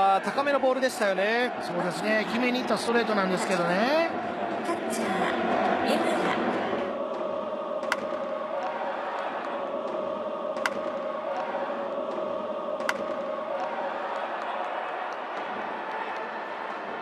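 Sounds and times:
crowd chanting: 0.0s - 17.0s.

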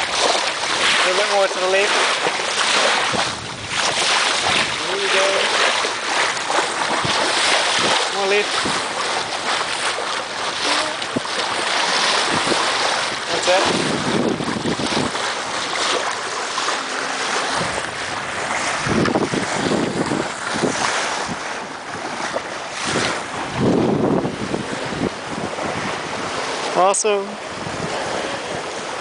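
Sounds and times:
water rushing along hull: 0.0s - 29.0s
wind buffeting microphone: 0.0s - 29.0s.

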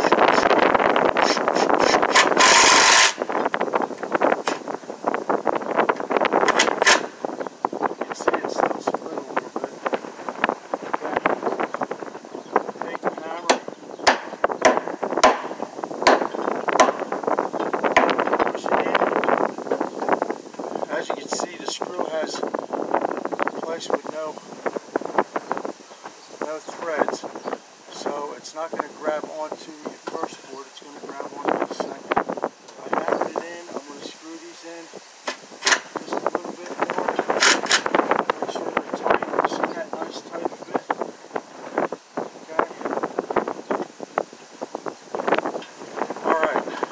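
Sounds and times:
wind on microphone: 0.0s - 46.9s
impact driver driving screw: 1.2s - 3.2s
hammer strikes: 13.5s - 17.0s.

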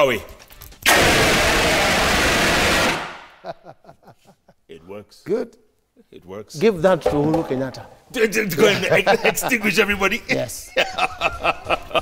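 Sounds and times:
fire extinguisher hissing: 0.8s - 3.4s.

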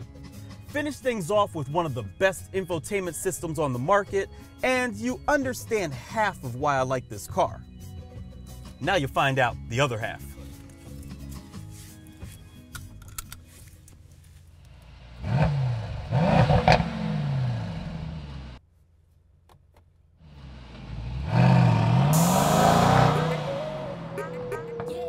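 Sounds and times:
exhaust cracks: 14.4s - 18.6s, 19.6s - 24.1s
car engine revving: 14.7s - 18.6s, 20.2s - 24.5s
car accelerating through gears: 15.1s - 18.6s, 20.2s - 24.5s.

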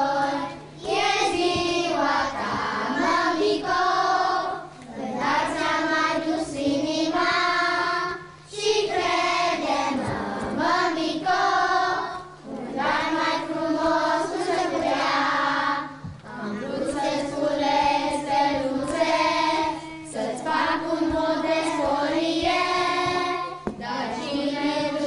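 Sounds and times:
young children singing: 0.0s - 25.0s.

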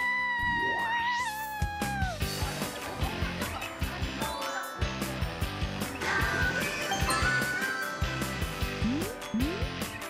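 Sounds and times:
upbeat music with steady beat: 6.6s - 9.9s.

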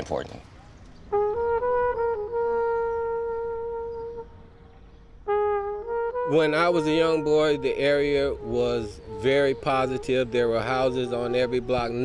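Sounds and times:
wind instrument long note: 1.1s - 12.0s.

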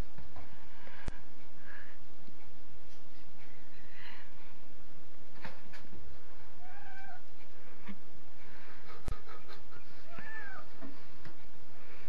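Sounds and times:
cat meowing: 6.6s - 7.3s, 10.0s - 10.7s.

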